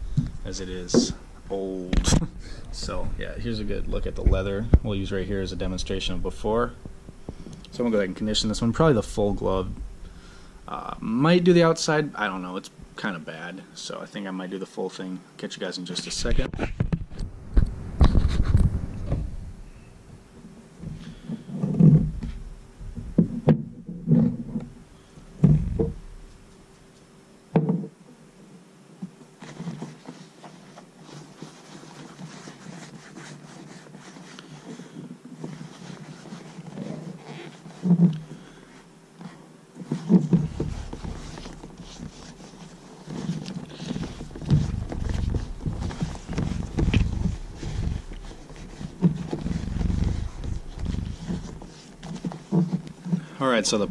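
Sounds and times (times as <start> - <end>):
leather being rubbed: 18.1 - 18.8, 29.4 - 53.9
dull thumps on table: 25.4 - 26.1, 27.5 - 28.0, 39.8 - 53.2.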